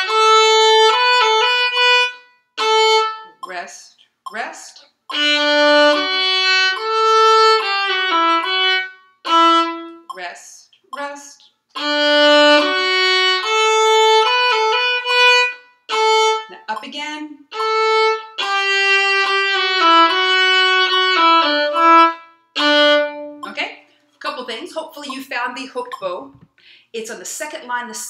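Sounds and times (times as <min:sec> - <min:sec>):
solo violin bowed notes: 0:00.0 - 0:03.3, 0:05.1 - 0:10.1, 0:11.8 - 0:16.7, 0:17.5 - 0:23.5
woman speaking: 0:03.4 - 0:04.9, 0:10.1 - 0:11.5, 0:16.5 - 0:17.5, 0:23.4 - 0:28.0.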